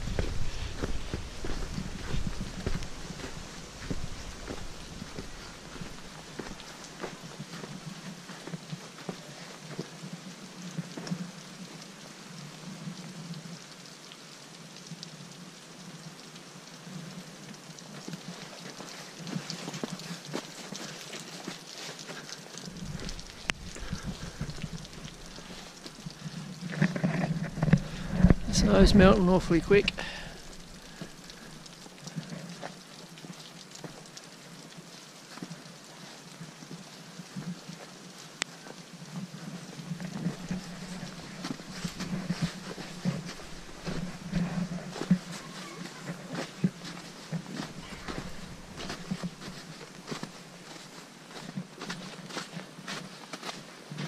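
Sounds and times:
meltwater dripping off roof: 0:00.0 - 0:54.0.

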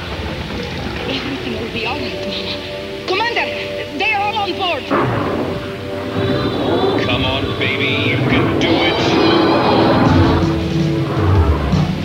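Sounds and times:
background music: 0:00.0 - 0:12.0
cartoon explosion: 0:04.9 - 0:12.0.

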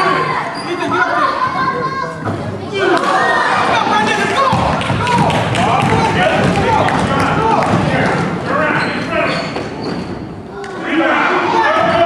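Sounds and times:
children shouting and chattering: 0:00.0 - 0:09.3, 0:10.3 - 0:12.0.

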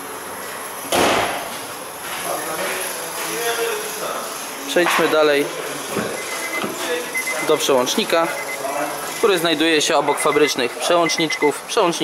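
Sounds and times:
car bonnet slamming shut: 0:00.9 - 0:01.4.

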